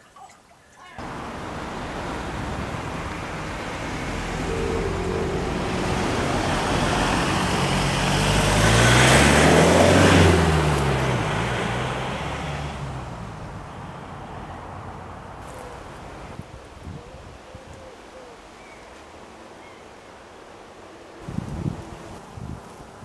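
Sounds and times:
vehicle passing by: 1.0s - 16.5s.

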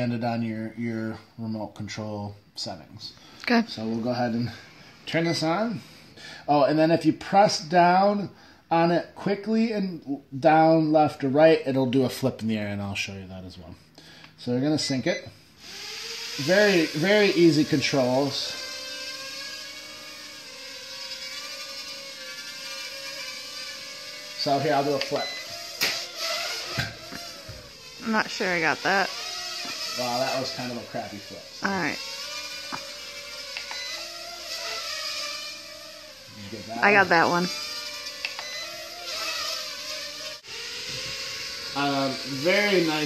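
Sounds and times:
quadcopter propellers whining: 14.8s - 43.0s.

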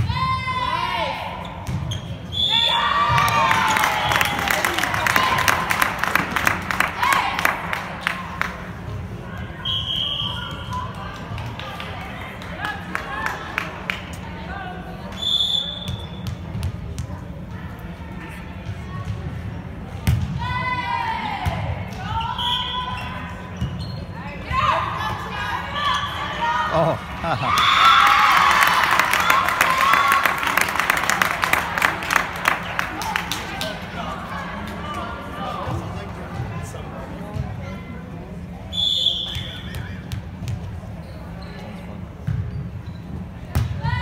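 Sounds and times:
shouts and cheers: 2.5s - 5.6s, 26.1s - 30.6s.

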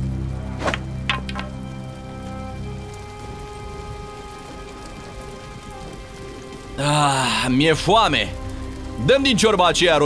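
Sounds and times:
soft background music: 0.0s - 10.0s
steady rain falling: 0.0s - 10.0s.

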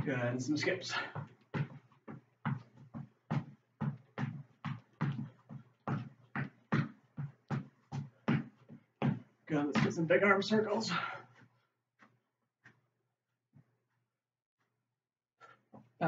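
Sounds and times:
footfalls skipping on floor: 0.0s - 12.8s.

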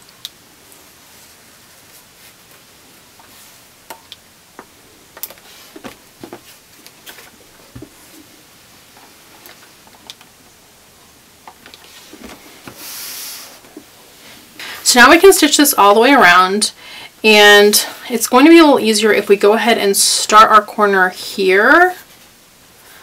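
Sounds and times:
soft rustles: 1.0s - 3.7s, 5.3s - 10.0s, 11.6s - 14.6s.

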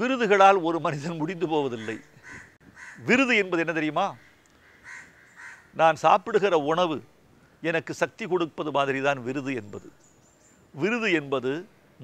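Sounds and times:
man speaking: 0.0s - 2.1s, 3.0s - 4.2s, 5.8s - 10.0s, 10.8s - 11.7s.

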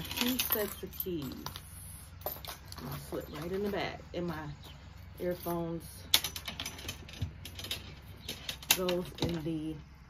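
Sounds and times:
handbag clicking and rattling: 0.0s - 4.0s.

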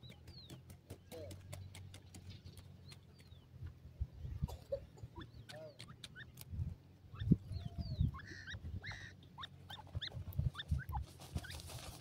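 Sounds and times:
bird fluttering wings in dust: 0.0s - 3.0s, 10.1s - 12.0s
birds chirping softly: 0.0s - 12.0s.

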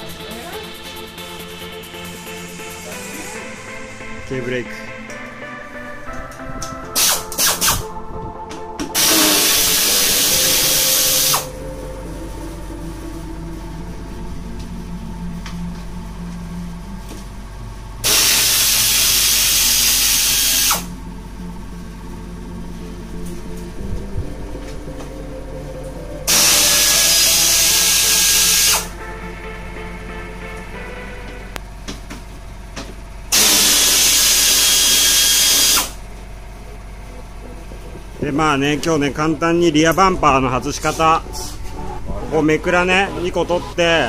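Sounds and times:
pneumatic tool running: 7.0s - 7.8s, 9.0s - 11.5s, 18.0s - 20.9s, 26.3s - 28.9s, 33.3s - 36.0s.

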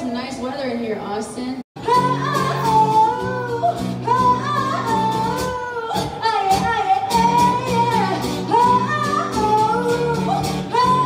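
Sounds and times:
acoustic guitar: 1.8s - 11.0s
woman singing: 1.8s - 11.0s.

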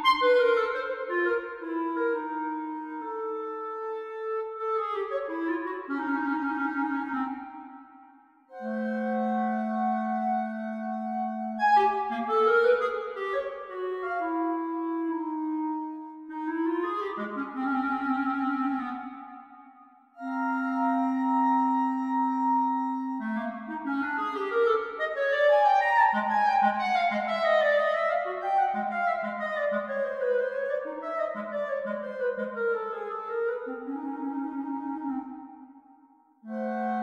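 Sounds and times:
solo clarinet playing: 0.0s - 35.6s, 36.4s - 37.0s.

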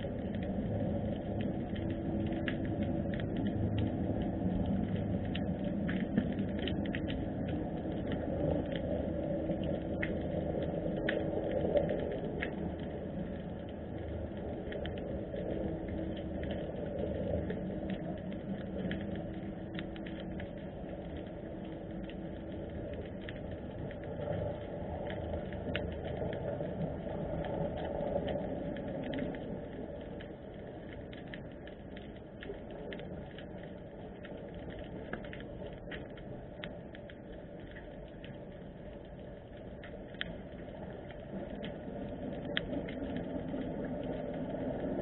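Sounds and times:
faint steady hum: 0.0s - 45.0s
faint underwater clicks and crackles: 0.0s - 45.0s
underwater rushing noise: 0.0s - 45.0s.

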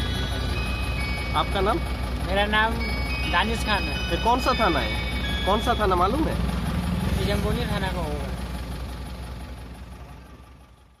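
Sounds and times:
lorry engine idling: 0.0s - 11.0s.

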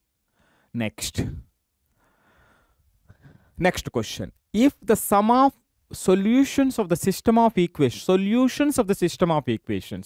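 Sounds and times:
man speaking: 0.7s - 1.5s, 3.6s - 10.0s
faint breath through mouth: 1.9s - 3.6s.

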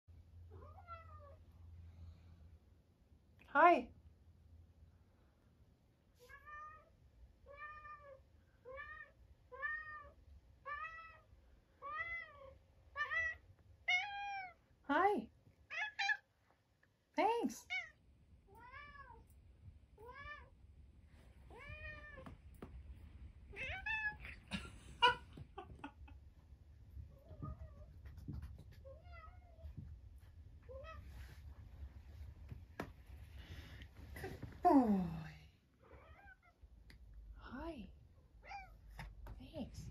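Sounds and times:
cat meowing: 7.5s - 14.6s, 21.5s - 22.3s, 23.5s - 25.2s.

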